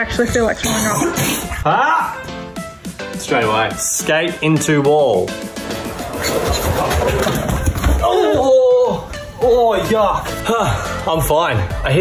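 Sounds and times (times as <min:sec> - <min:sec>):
longboard wheels rolling on concrete: 0:05.5 - 0:08.0.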